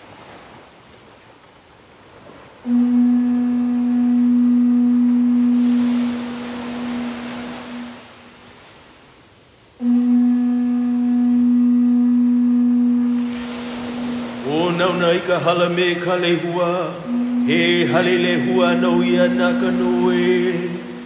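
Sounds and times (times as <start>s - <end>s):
ocean waves: 0.0s - 21.0s
conch shell blasts: 2.7s - 8.0s, 9.8s - 14.9s, 16.8s - 21.0s.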